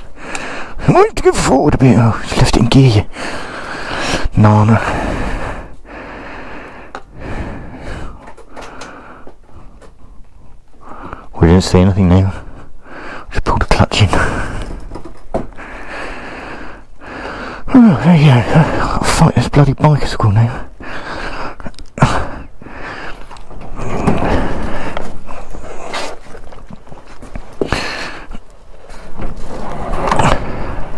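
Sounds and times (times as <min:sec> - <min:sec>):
heavy breathing: 0:00.0 - 0:00.9, 0:03.0 - 0:11.4, 0:12.3 - 0:13.4, 0:14.0 - 0:19.2, 0:20.4 - 0:30.9
rustling and shuffling: 0:22.5 - 0:30.9.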